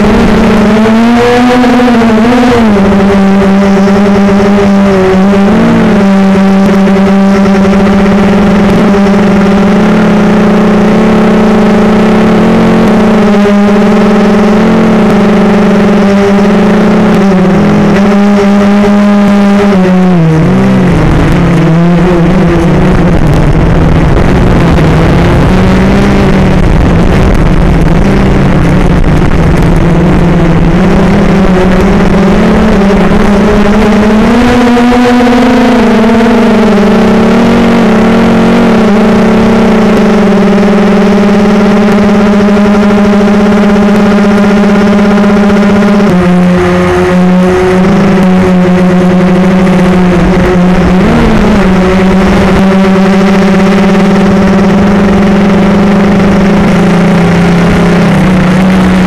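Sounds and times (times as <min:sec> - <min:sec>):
model aircraft motor hum: 0:00.0 - 0:59.0
rushing noise: 0:00.0 - 0:59.0.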